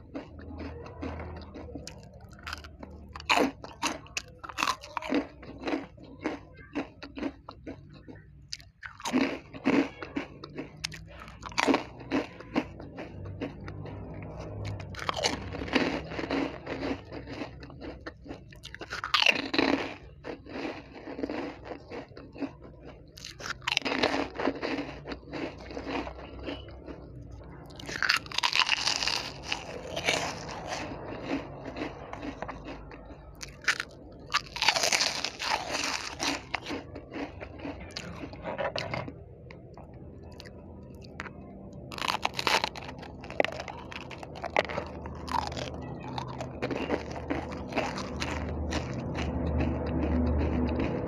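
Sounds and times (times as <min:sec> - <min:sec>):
crunching crispy snacks: 0:00.0 - 0:51.0.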